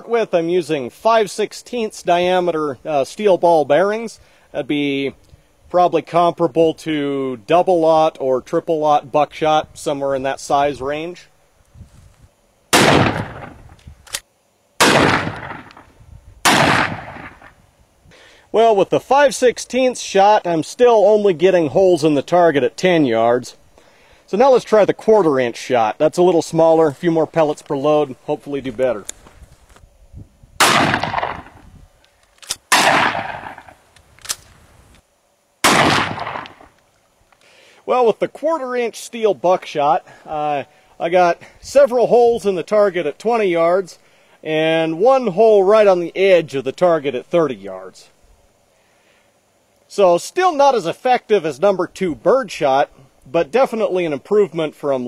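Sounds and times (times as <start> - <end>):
shotgun shots: 12.7 - 13.7, 14.8 - 17.6, 30.6 - 31.6, 32.7 - 33.8, 35.6 - 36.7.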